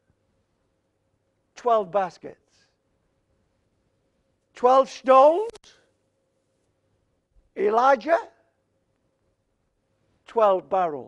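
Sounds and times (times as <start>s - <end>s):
man speaking: 1.6s - 2.5s, 4.5s - 5.7s, 7.6s - 8.4s, 10.3s - 11.0s.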